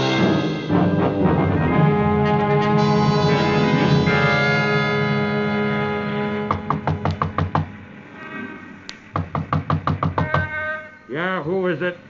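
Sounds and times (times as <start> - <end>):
knocking on a door: 6.5 - 7.8, 9.1 - 10.6.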